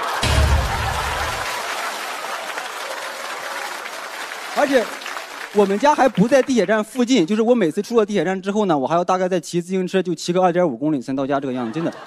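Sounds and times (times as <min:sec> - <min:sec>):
studio audience applauding: 0:00.0 - 0:07.9.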